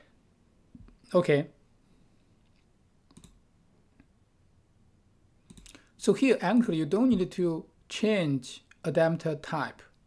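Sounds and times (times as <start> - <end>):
computer mouse clicks: 2.4 - 3.4, 5.4 - 5.9.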